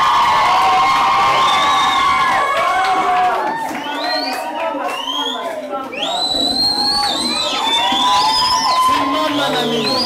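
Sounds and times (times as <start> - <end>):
children cheering and shouting: 6.8 - 9.8.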